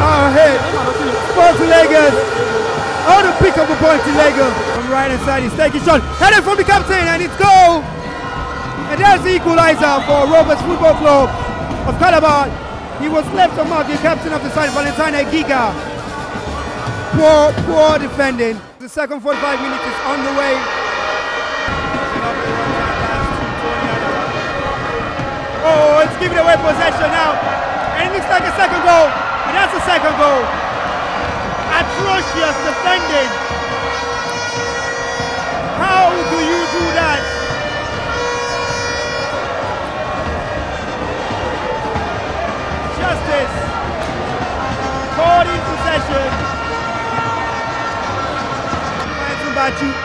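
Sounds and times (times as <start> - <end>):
sustained pitched tones: 0.0 - 17.0
horns from the stands: 0.0 - 50.0
stadium crowd noise: 0.0 - 50.0.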